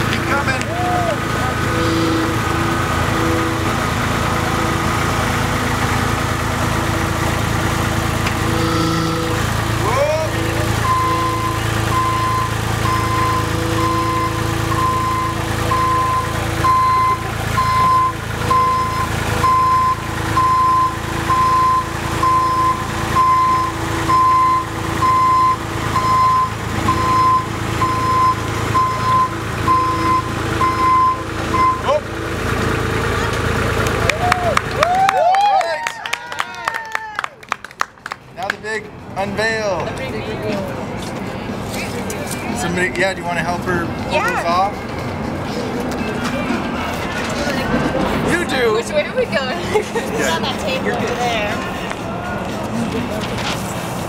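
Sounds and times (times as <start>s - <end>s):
road roller diesel engine running: 0.0s - 54.0s
reversing alarm beeping: 10.2s - 32.0s.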